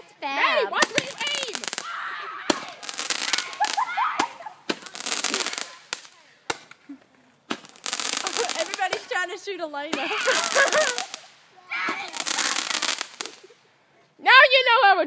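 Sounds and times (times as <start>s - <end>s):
fireworks crackling and popping: 0.7s - 13.7s.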